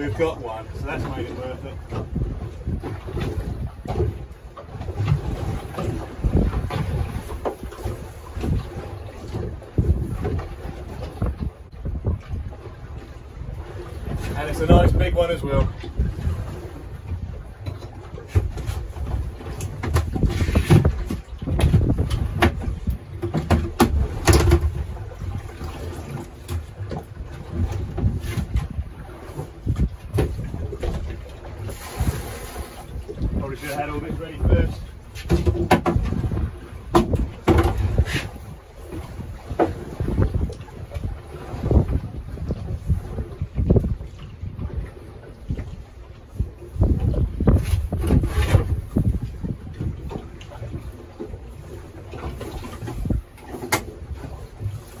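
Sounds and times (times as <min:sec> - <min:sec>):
water splashing: 0:00.0 - 0:55.0
wind buffeting microphone: 0:00.0 - 0:55.0.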